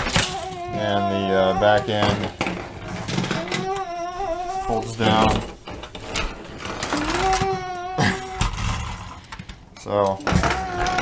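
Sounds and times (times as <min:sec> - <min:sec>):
plastic pieces clicking and rattling: 0:00.0 - 0:03.9, 0:05.0 - 0:11.0.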